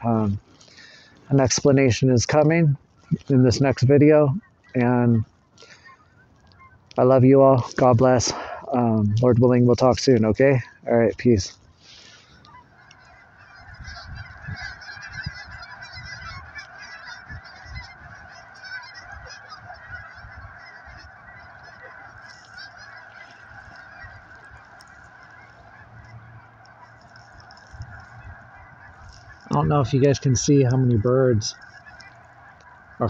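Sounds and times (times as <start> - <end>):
geese honking: 0.0 - 33.0.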